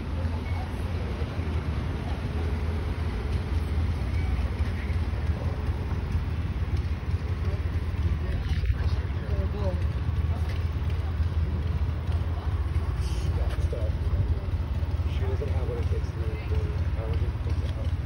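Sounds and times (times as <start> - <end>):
distant indistinct voices: 0.0 - 18.0
steady low rumble: 0.0 - 18.0.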